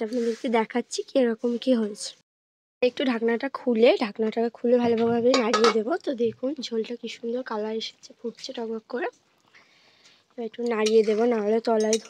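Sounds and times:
woman speaking: 2.8 - 9.2, 10.4 - 12.0
metal pan lid clinking: 5.3 - 5.8, 10.6 - 12.0.

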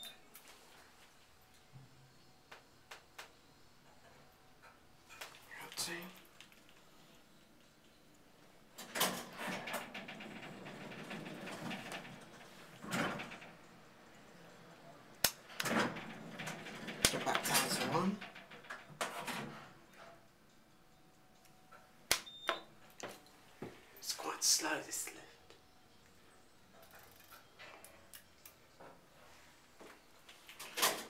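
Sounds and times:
elevator door and machinery noise: 7.2 - 20.3, 30.4 - 31.0.

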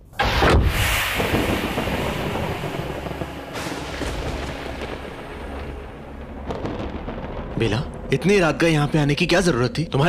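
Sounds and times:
loud boom: 0.1 - 8.8
sustained rumbling: 0.2 - 10.0.

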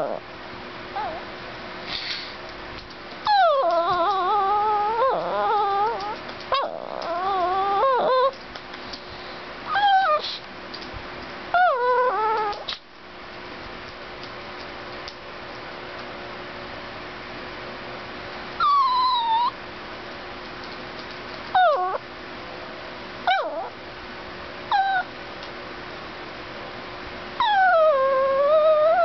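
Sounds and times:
dog whining: 0.0 - 0.3, 0.9 - 1.3, 3.2 - 8.4, 9.7 - 10.4, 11.5 - 12.8, 18.6 - 19.6, 21.5 - 22.0, 23.2 - 23.8, 24.7 - 25.1, 27.4 - 29.0
faint steady hum: 0.0 - 29.0.

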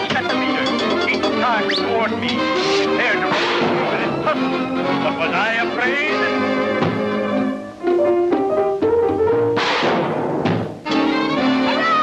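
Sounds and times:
timpani: 0.0 - 5.4, 6.1 - 12.0
brass: 0.0 - 8.3, 9.5 - 12.0
noisy crash: 2.6 - 4.1, 9.6 - 10.8.

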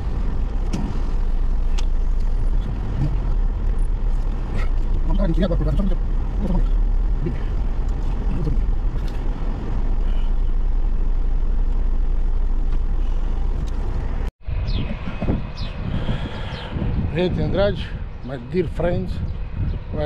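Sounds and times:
car engine and tyres rumbling: 0.0 - 20.0.

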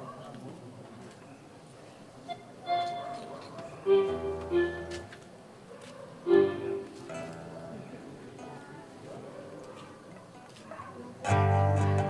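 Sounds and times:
acoustic band music: 2.7 - 5.2, 6.3 - 8.6, 11.3 - 12.0.

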